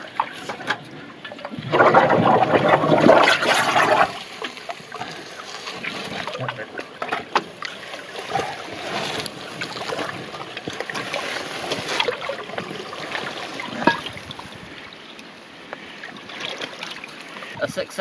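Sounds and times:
rush of moving water: 0.0 - 18.0
water sloshing and splashing: 0.0 - 18.0.

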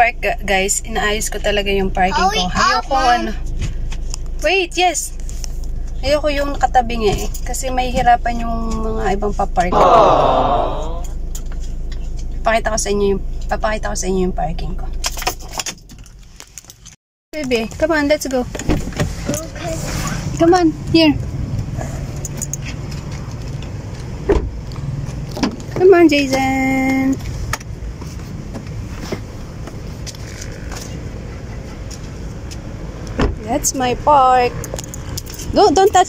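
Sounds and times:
low rumble of road traffic: 0.0 - 16.8, 17.4 - 36.0.

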